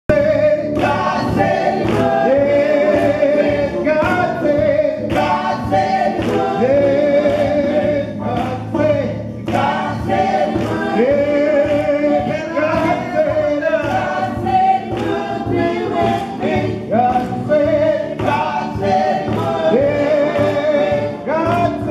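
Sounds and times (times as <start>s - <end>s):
gospel group singing: 0.1s - 21.9s
sharp beat: 0.1s - 21.9s.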